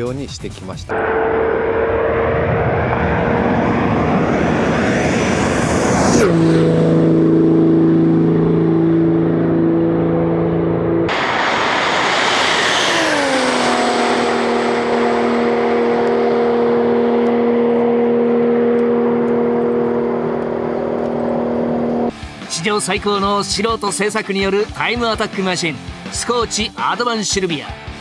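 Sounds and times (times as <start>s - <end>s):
rushing wind: 0.9s - 22.1s
road noise: 0.9s - 22.3s
car engine at high speed: 0.9s - 22.4s.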